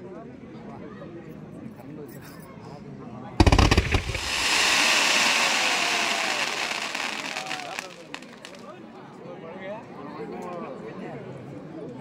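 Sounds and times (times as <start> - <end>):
crackling hiss of sparks: 3.4 - 8.6
fireworks bangs: 3.4 - 8.6.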